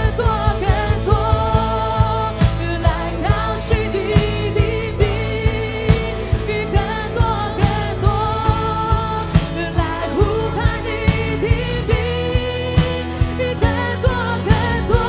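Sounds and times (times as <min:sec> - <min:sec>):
steady drum beat: 0:00.0 - 0:15.0
sustained bass: 0:00.0 - 0:15.0
worship song singing: 0:00.0 - 0:15.0.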